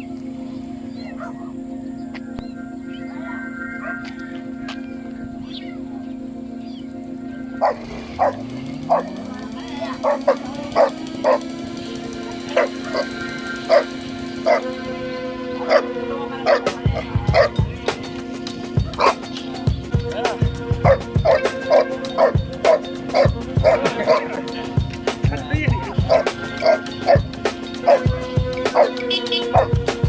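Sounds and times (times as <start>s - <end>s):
background music with held tone: 0.0s - 30.0s
dog barking: 1.2s - 1.5s, 7.6s - 9.2s, 9.9s - 11.5s, 12.5s - 14.7s, 15.7s - 15.9s, 16.5s - 17.6s, 19.0s - 19.2s, 20.8s - 24.3s, 26.0s - 28.1s, 28.7s - 29.8s.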